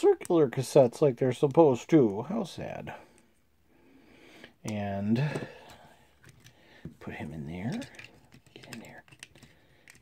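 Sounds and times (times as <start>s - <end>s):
hard plastic clicks and scrapes: 7.7s - 10.0s.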